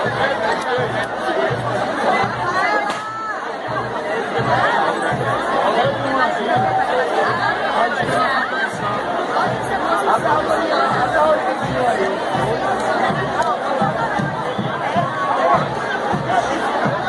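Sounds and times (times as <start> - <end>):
crowd chatter: 0.0 - 17.0.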